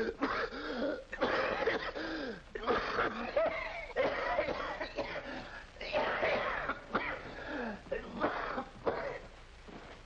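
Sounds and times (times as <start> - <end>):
man coughing: 0.0 - 9.3.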